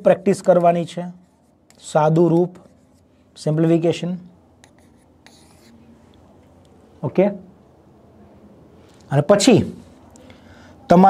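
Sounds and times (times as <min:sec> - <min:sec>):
writing on a board: 0:04.6 - 0:05.9.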